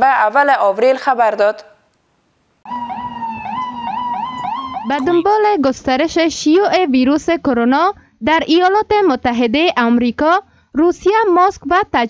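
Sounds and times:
ambulance siren yelping: 2.7s - 5.3s.

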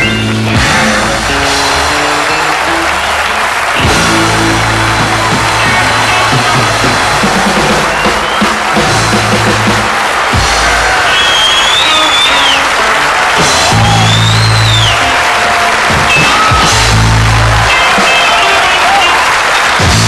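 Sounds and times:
audience applauding and cheering: 0.0s - 20.0s
live rockabilly band playing: 0.0s - 20.0s.

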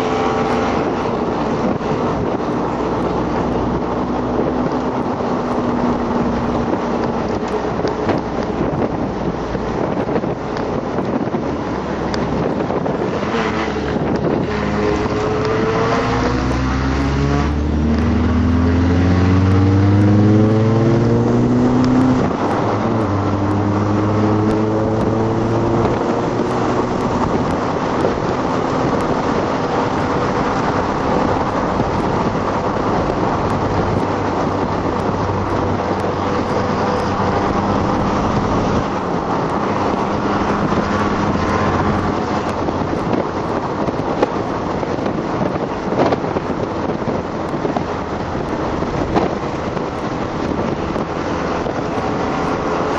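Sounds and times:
car engine accelerating: 0.0s - 52.9s
road noise: 0.0s - 52.9s
wind noise: 0.0s - 52.9s.

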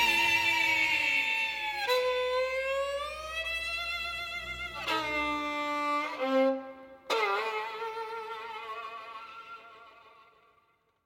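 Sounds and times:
violin bowed note sliding upward: 0.0s - 10.5s.

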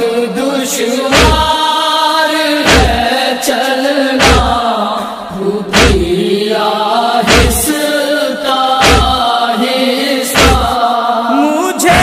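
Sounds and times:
men chanting a lament: 0.0s - 12.0s
deep thumping beat: 1.1s - 1.6s, 2.7s - 3.0s, 4.2s - 4.6s, 5.7s - 6.1s, 7.3s - 7.6s, 8.8s - 9.2s, 10.4s - 10.8s.

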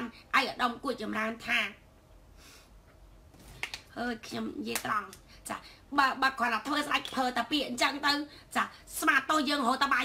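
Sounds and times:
woman speaking: 0.0s - 1.8s, 3.9s - 10.0s.

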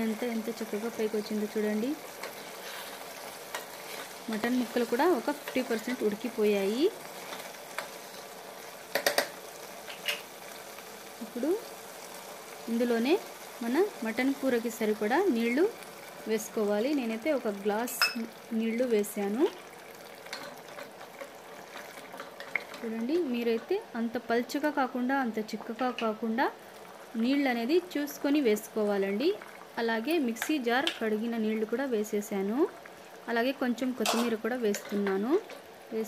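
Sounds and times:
soft frying hiss: 0.0s - 36.0s.

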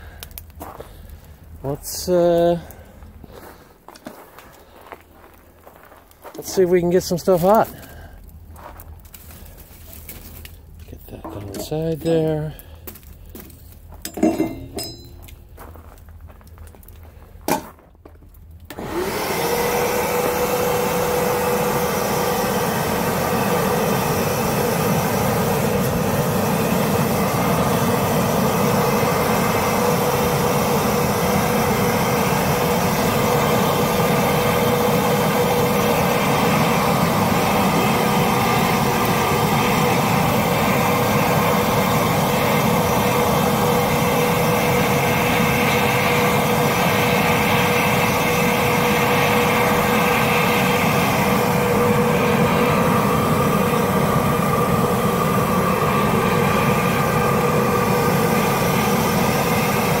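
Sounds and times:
air blower whining: 0.0s - 15.6s, 18.5s - 60.0s
air-fed fire rushing: 0.0s - 17.6s, 18.7s - 60.0s.

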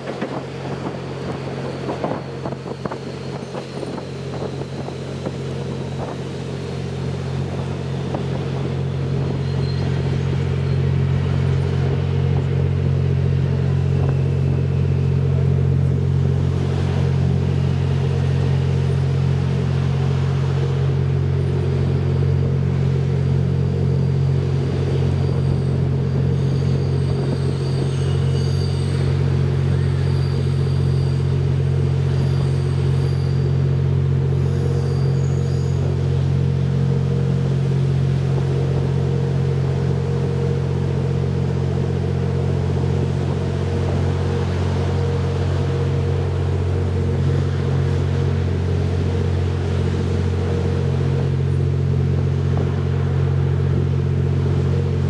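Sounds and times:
rail rumble: 0.0s - 55.0s
train engine drone: 0.0s - 55.0s.

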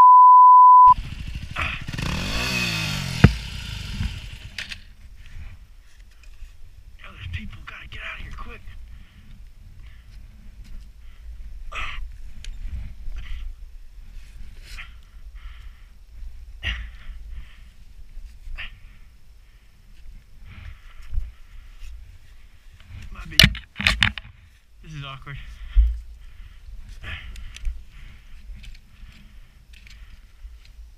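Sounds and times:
person breathing hard and grunting: 11.7s - 12.2s, 14.7s - 17.7s, 25.4s - 28.3s.

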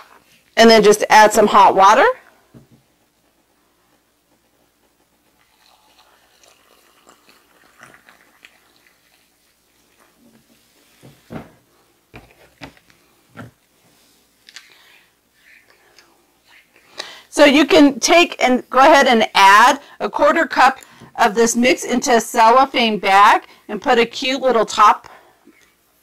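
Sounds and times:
water pouring into mug: 5.5s - 10.2s.

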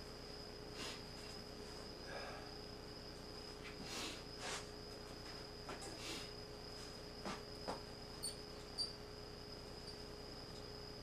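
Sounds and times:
steady high-pitched whine: 0.0s - 11.0s.

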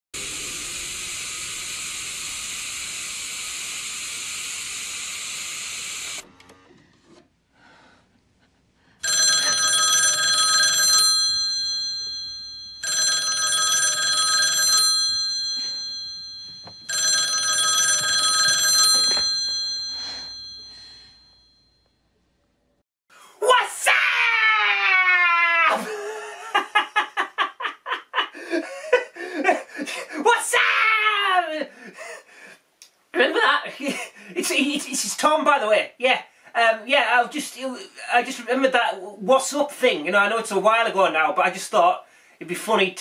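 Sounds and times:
steady hiss: 0.2s - 6.2s
telephone bell ringing: 9.0s - 21.8s.

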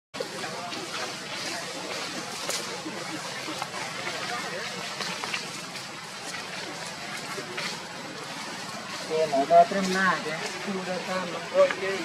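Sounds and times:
distant chatter of voices: 0.2s - 12.0s.

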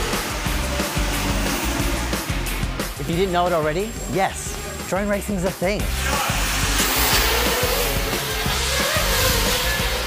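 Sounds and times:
background music with beat: 0.0s - 10.0s
drone propellers whirring: 0.0s - 10.0s.

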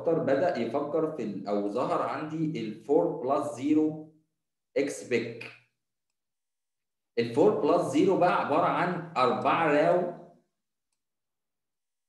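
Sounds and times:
man speaking: 0.0s - 4.0s, 4.8s - 5.6s, 7.2s - 10.2s.

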